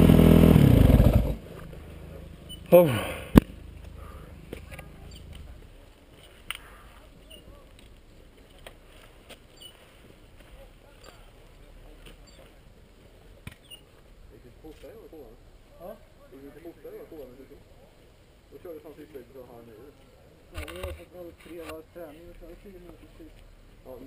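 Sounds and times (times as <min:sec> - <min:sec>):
distant people talking: 0:04.0 - 0:09.0.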